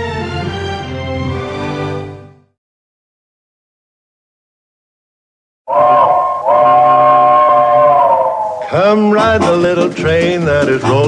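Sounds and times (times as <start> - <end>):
steam locomotive whistle: 5.7 - 9.0.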